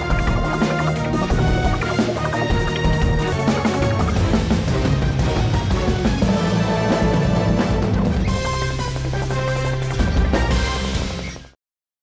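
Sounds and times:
tv theme music with steady beat: 0:00.0 - 0:11.6.

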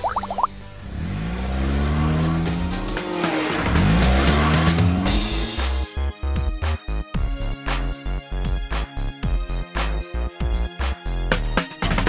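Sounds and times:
cartoon car engine revving: 0:00.0 - 0:05.8.

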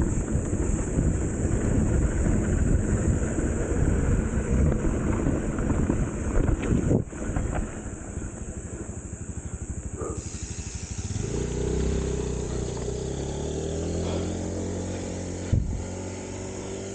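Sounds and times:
small motorcycle engine running: 0:00.0 - 0:16.9.

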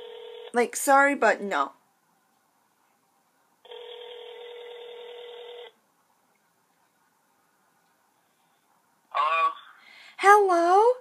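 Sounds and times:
phone ringback tone: 0:00.0 - 0:00.5, 0:03.7 - 0:05.8.

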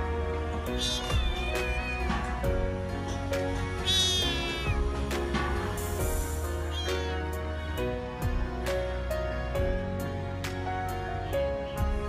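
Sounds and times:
background music: 0:00.0 - 0:12.0
kitten mewing: 0:00.8 - 0:02.4, 0:03.8 - 0:04.8, 0:06.6 - 0:07.3.

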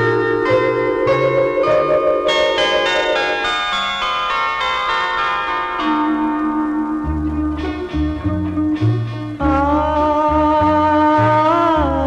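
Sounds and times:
ringing bell-like notes: 0:00.0 - 0:08.6
low bass notes: 0:06.1 - 0:12.0.

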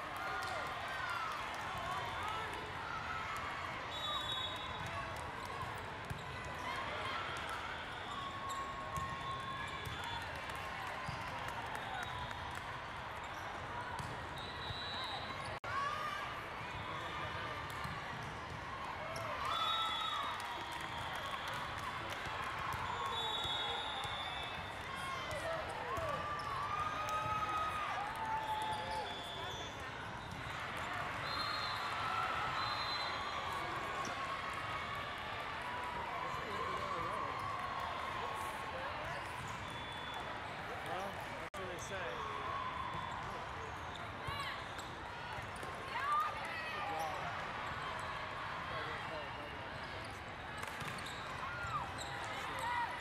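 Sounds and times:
whistle blasts: 0:03.9 - 0:04.8, 0:14.4 - 0:15.4, 0:23.0 - 0:24.5, 0:31.2 - 0:33.4.

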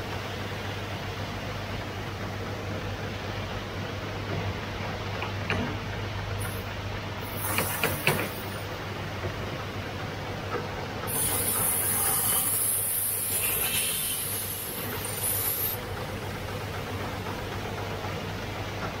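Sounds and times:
loud high hiss of grinding: 0:11.1 - 0:15.8.

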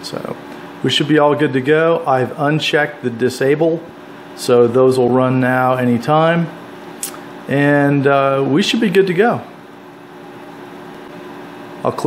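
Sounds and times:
man talking: 0:00.0 - 0:06.6, 0:07.5 - 0:09.5, 0:11.8 - 0:12.0
steady mechanical hum: 0:00.0 - 0:12.0.

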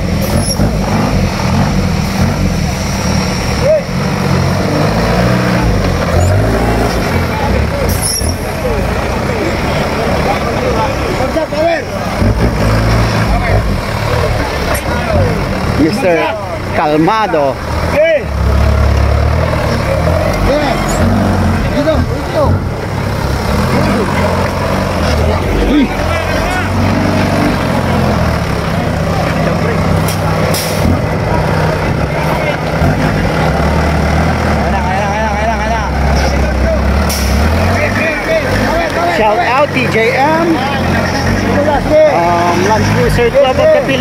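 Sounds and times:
off-road buggy engine revving: 0:00.0 - 0:44.0
voices shouting: 0:19.3 - 0:29.9.

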